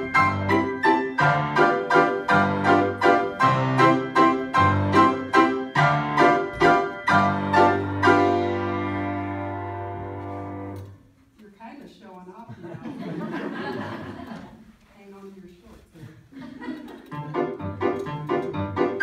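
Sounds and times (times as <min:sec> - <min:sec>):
piano playing loud chords: 0:00.0 - 0:10.8, 0:17.2 - 0:19.0.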